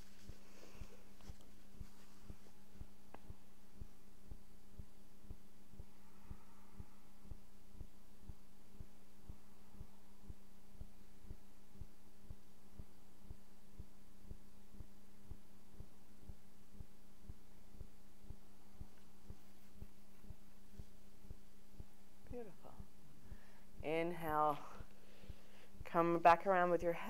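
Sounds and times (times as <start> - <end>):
soft low pulses: 0.0 - 27.0
steady low hum: 0.0 - 27.0.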